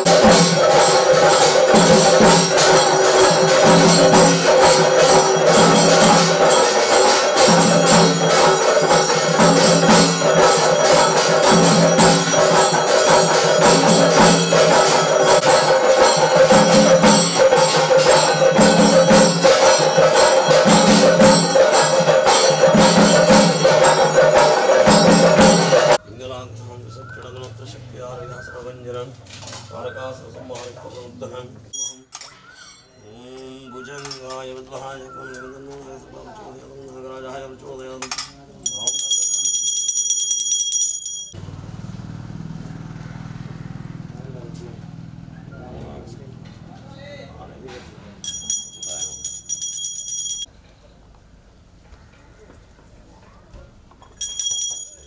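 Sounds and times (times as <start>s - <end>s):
bell ringing in quick strokes: 0.0s - 26.0s, 54.2s - 55.0s
background voices: 33.0s - 38.6s.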